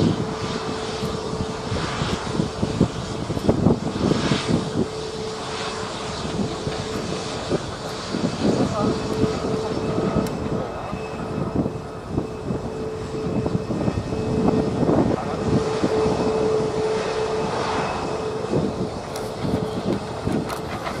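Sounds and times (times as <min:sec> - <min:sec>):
jet engines at climb power: 0:00.0 - 0:21.0.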